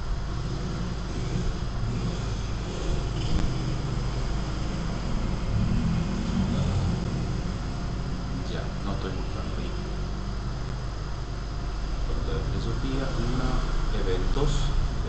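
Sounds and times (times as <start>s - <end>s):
low rumbling background noise: 0.0s - 15.0s.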